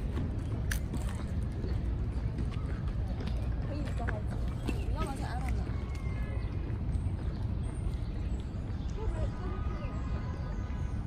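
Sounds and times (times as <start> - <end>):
clopping steps on pavement: 0.0 - 10.9
murmur of voices: 0.9 - 11.0.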